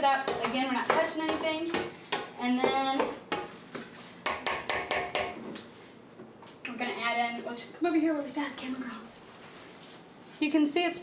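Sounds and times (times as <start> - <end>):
metal utensil knocking on steel bowl: 0.0 - 3.5, 4.2 - 5.4.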